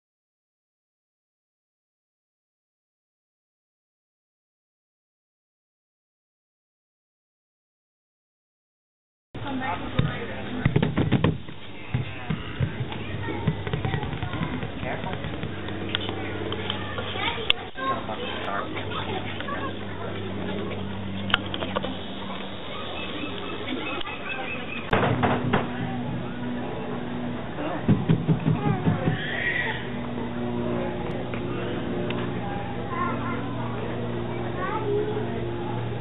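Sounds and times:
hands patting large drum: 27.8s - 29.2s.

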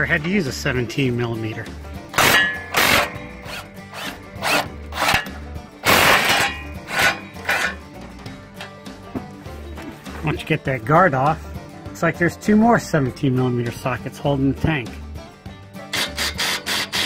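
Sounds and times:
background music with low beat: 0.0s - 17.0s
socket ratchet rasping: 2.2s - 5.3s.

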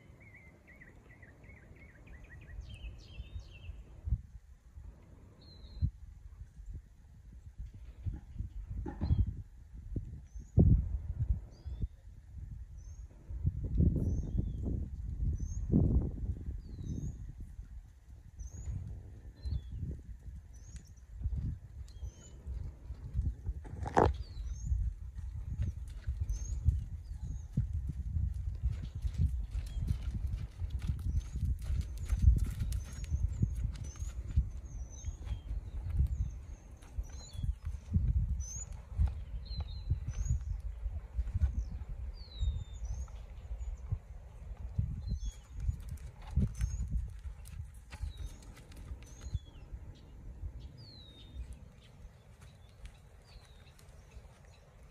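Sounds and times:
horse hooves on sand: 17.8s - 54.9s.

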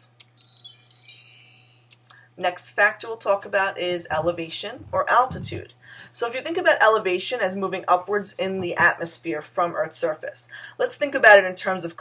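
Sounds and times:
shimmering chime sound effect: 0.4s - 1.9s.

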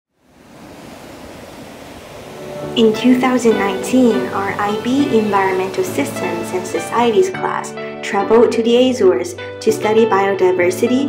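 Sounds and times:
ocean waves breaking on beach: 0.1s - 8.0s.

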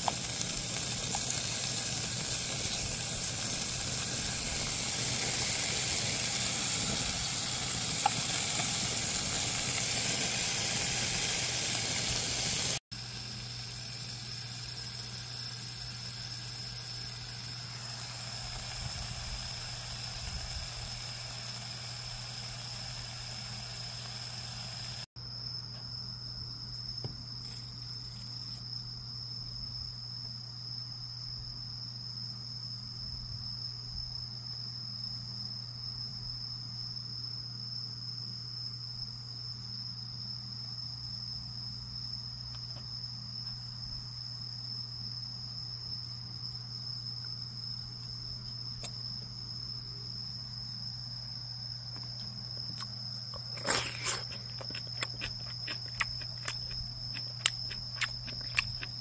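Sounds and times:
meat sizzling on grill: 0.0s - 25.1s
crickets chirring: 0.0s - 59.0s.

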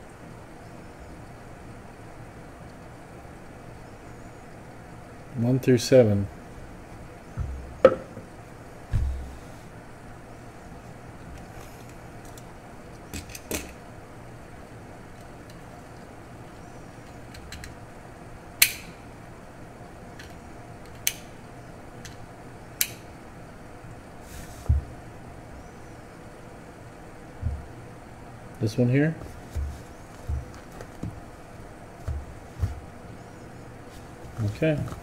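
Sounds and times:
low room hum: 0.0s - 35.0s
dull thump: 7.4s - 8.2s, 8.9s - 9.4s, 27.4s - 27.7s, 29.5s - 31.2s.

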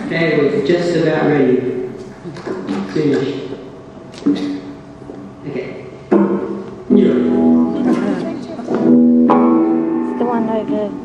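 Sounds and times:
electric guitar chords ringing: 6.1s - 11.0s.

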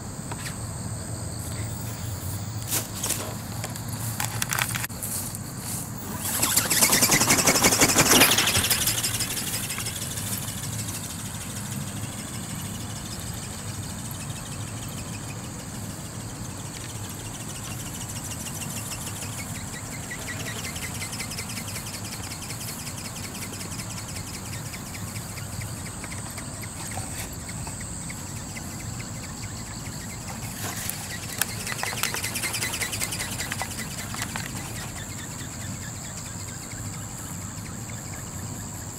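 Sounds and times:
robot flapping wings whirring: 5.7s - 14.5s, 29.5s - 35.4s.

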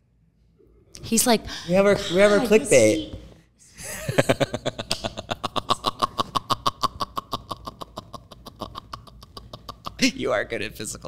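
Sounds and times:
high-pitched laughter: 3.8s - 10.1s.

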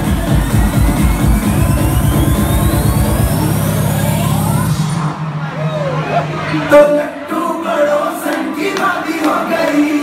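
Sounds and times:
kick drum beat: 0.0s - 3.0s
rising synth sweep: 0.0s - 6.6s.

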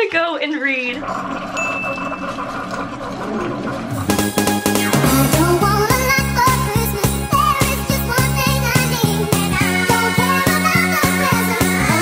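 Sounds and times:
coffee maker pump hum: 0.0s - 7.1s
water running into mug: 0.8s - 4.2s
high ringing tone: 1.6s - 2.6s.

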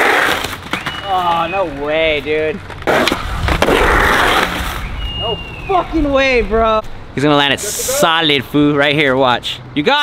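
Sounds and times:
skateboard trucks grinding: 0.0s - 5.8s.

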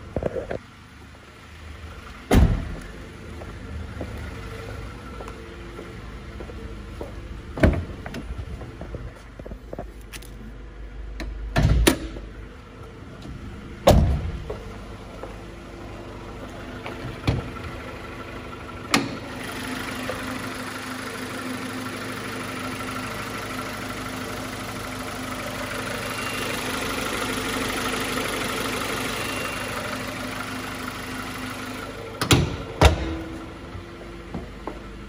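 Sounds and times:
car engine idling: 0.0s - 35.0s.

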